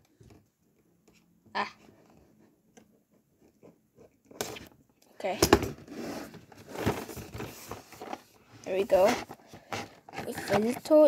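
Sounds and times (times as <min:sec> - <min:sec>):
short scrape: 0:05.9 - 0:06.8.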